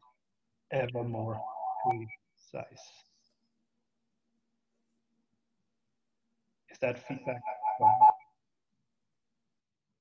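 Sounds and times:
audio feedback ringing tone: 0:07.4 - 0:08.3.

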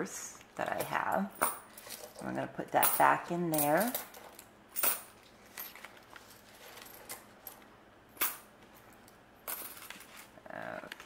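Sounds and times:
coins clinking: 0:01.3 - 0:02.2, 0:02.8 - 0:07.6, 0:09.4 - 0:10.2
handling rustle: 0:05.1 - 0:07.6, 0:09.6 - 0:10.4.

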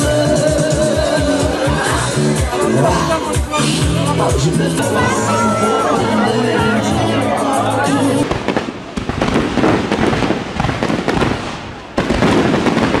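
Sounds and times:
music: 0:00.0 - 0:08.3
fireworks crackling: 0:07.3 - 0:13.0
loud firework salvos: 0:08.2 - 0:13.0.

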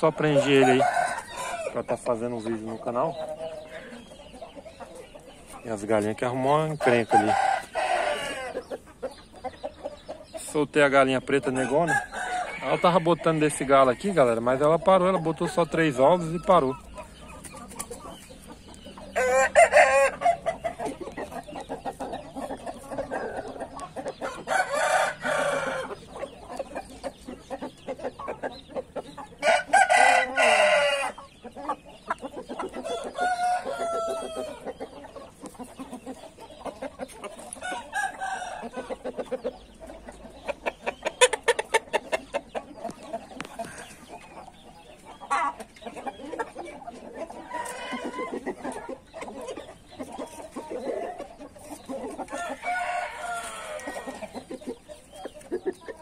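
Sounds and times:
roosters crowing: 0:00.0 - 0:04.0, 0:06.3 - 0:09.0, 0:11.3 - 0:42.8, 0:45.3 - 0:55.0
chicken clucking: 0:00.0 - 0:56.0.

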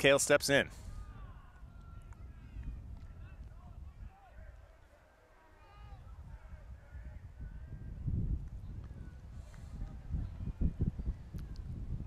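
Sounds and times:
wind buffeting microphone: 0:00.7 - 0:04.7, 0:05.7 - 0:12.0.

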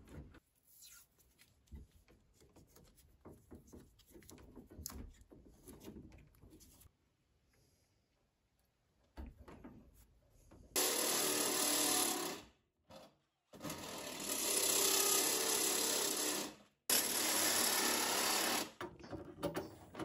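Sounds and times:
power tool whirring: 0:10.8 - 0:12.4, 0:13.6 - 0:18.8.

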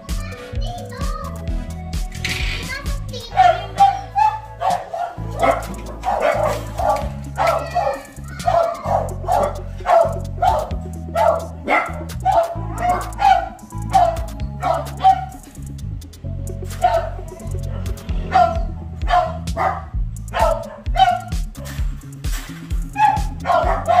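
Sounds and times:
background music: 0:00.0 - 0:24.0
dog barking: 0:03.3 - 0:15.4, 0:16.7 - 0:21.8, 0:22.9 - 0:24.0.

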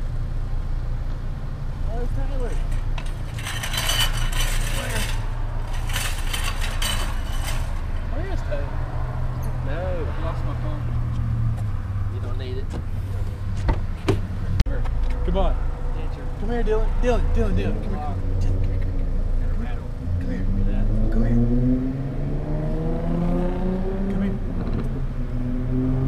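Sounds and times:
clattering noise: 0:02.3 - 0:08.1.

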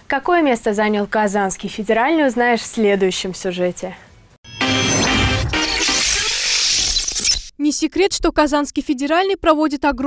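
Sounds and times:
short musical sting: 0:04.5 - 0:06.2.

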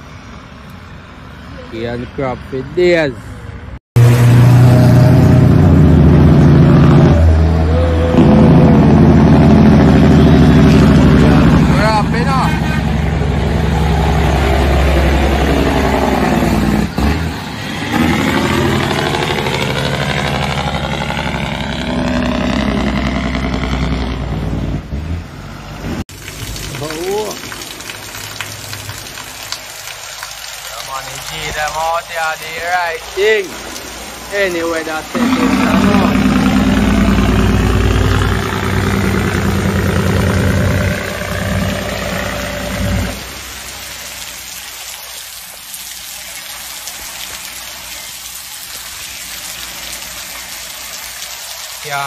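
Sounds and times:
diesel truck driving past: 0:03.2 - 0:26.4, 0:33.0 - 0:44.0.

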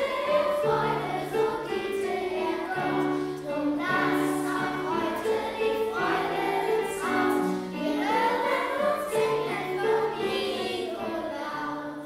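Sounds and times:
children's choir singing: 0:00.0 - 0:12.0.

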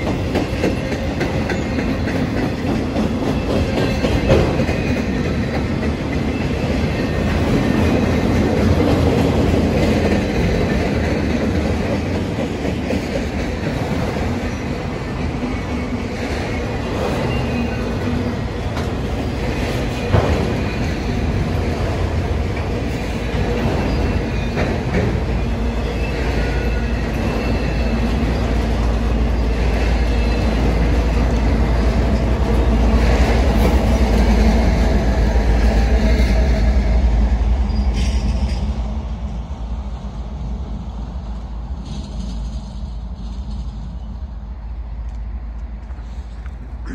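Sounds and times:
diesel locomotive rumble: 0:00.0 - 0:46.9
freight train rolling past: 0:00.0 - 0:46.9.

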